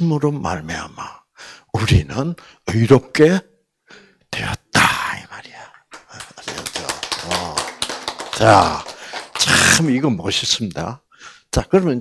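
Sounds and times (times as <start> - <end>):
low voiced sound: 6.4 - 10.0.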